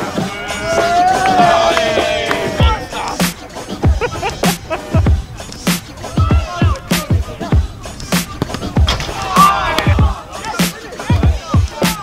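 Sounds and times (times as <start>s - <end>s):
busy background sound: 0.0s - 12.0s.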